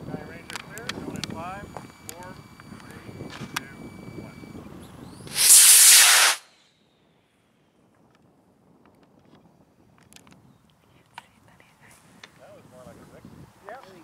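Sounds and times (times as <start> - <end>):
model rocket motor hiss: 5.3 - 6.6.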